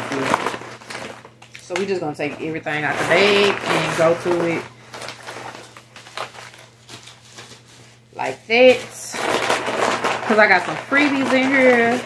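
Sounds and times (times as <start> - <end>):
shopping bag rustling: 0.0 - 12.0.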